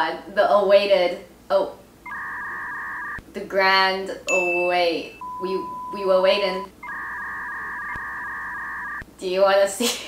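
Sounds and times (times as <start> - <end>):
steady two-pitch electronic tone: 2.1 - 3.2, 4.3 - 9.0.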